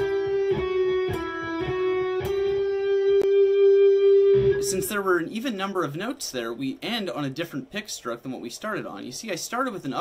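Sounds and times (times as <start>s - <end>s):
electric guitar single notes: 0.0s - 5.0s.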